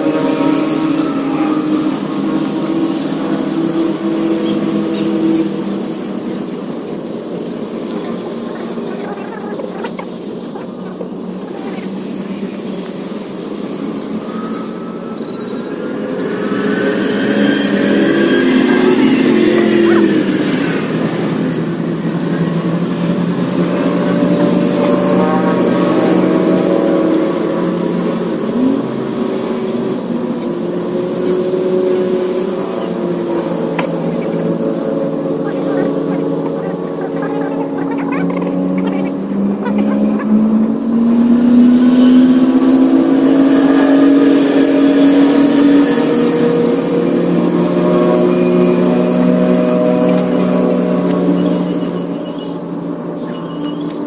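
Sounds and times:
engine running: 0.0s - 54.0s.

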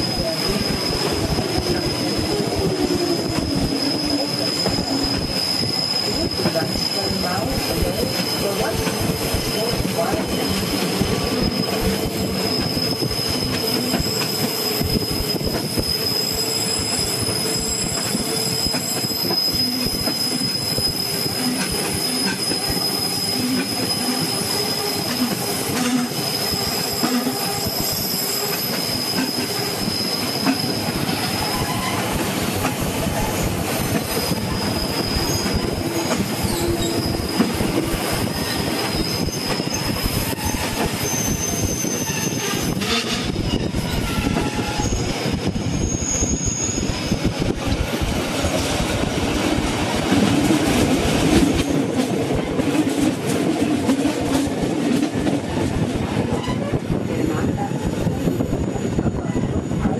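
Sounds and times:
train wheels squealing: 0.0s - 52.9s, 56.1s - 59.9s
train cars running on track: 0.0s - 59.9s.

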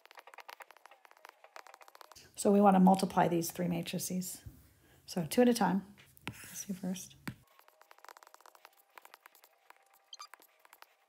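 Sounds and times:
stylus tapping on tablet screen: 0.0s - 2.2s, 7.2s - 11.0s.

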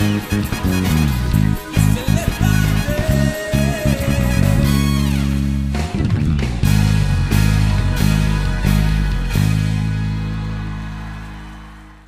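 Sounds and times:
low bass note and chord ringing: 0.0s - 11.2s.

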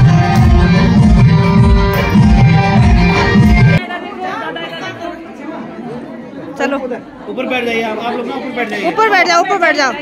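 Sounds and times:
music with heavy bass beat: 0.0s - 3.8s.

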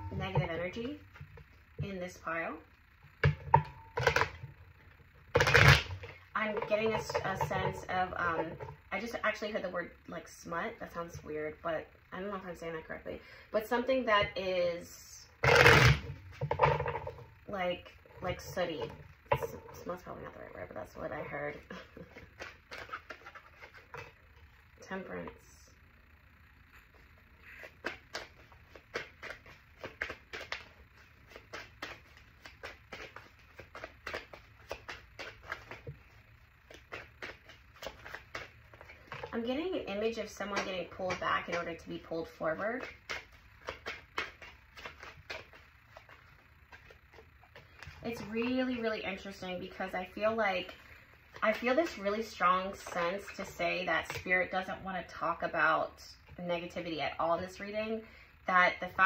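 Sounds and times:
cards rustling: 22.1s - 24.1s, 27.5s - 39.3s, 42.2s - 48.5s.

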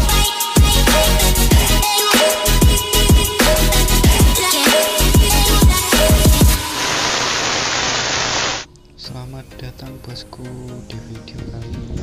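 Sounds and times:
white-noise static burst: 6.2s - 8.7s.

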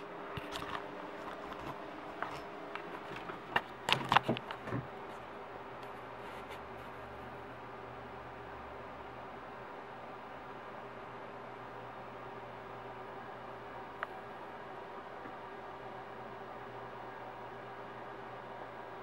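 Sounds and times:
computer fans humming: 0.0s - 19.0s.

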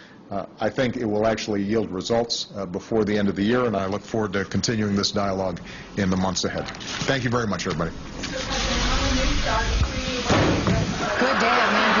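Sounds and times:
door banging shut: 10.3s - 10.9s.

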